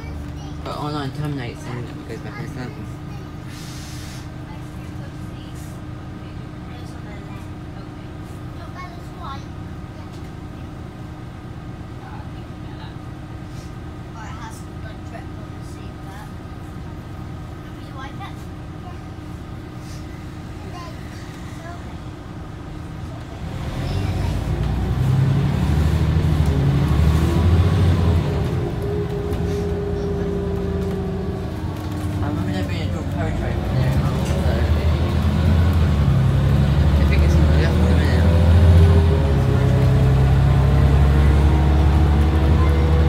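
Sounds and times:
bus engine accelerating: 0.0 - 43.0.

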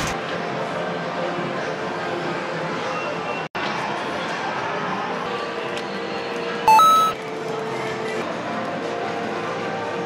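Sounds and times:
arcade machine music and din: 6.7 - 7.2
electronic two-note beep: 6.7 - 7.2.

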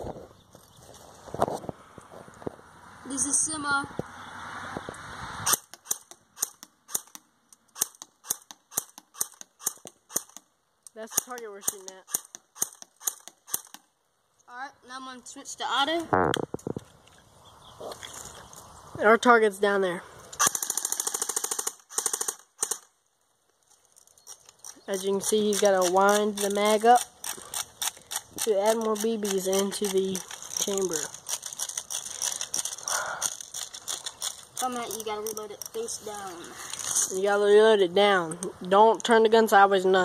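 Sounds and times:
rapid rattle of gunshots: 20.4 - 22.9.

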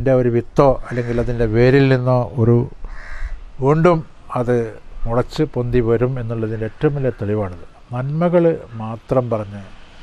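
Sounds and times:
man speaking: 0.0 - 2.8, 3.6 - 9.7
crow cawing: 0.9 - 1.5, 2.8 - 3.5.

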